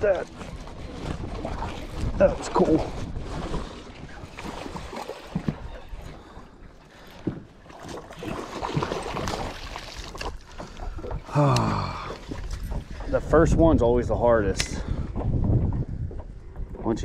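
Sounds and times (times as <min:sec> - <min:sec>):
water lapping around boat: 0:00.0 - 0:17.0
wind: 0:00.0 - 0:17.0.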